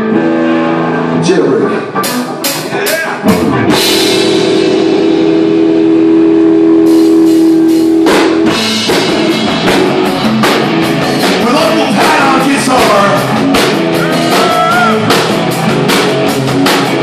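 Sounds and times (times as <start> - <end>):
drum kit: 0.0 - 17.0
electric guitars: 0.0 - 17.0.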